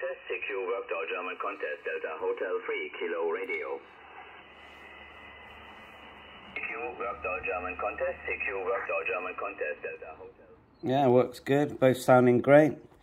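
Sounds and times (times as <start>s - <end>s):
radio band hiss: 0.0s - 10.6s.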